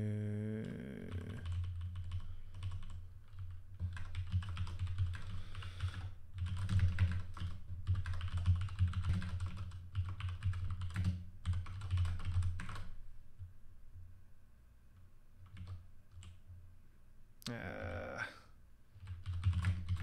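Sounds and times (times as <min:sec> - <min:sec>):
fast typing on keyboard: 0:01.1 - 0:13.0, 0:15.4 - 0:16.4, 0:19.0 - 0:20.0.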